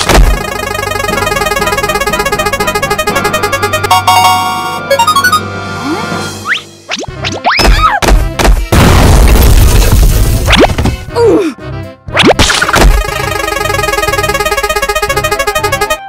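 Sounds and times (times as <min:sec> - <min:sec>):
prize wheel ticking: 0:00.3 - 0:05.4.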